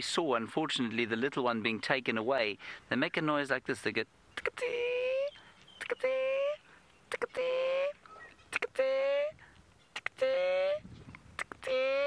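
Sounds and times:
mongoose sharp clicks: 11.1 - 11.7.

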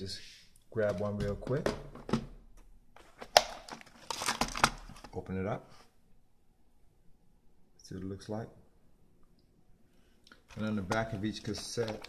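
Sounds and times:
plastic case crackling open: 3.0 - 5.2, 10.5 - 12.0.

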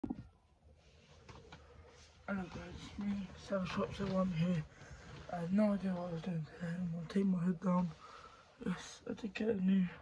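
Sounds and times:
faint rustles of person moving: 0.2 - 10.0.

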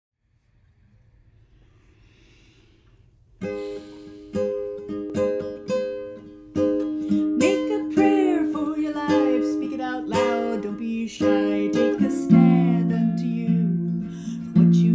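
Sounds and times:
classical guitar plucking chords: 3.4 - 14.9.

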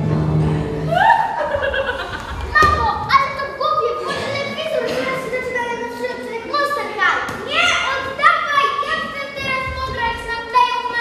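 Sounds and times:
children's voices: 1.0 - 11.0.

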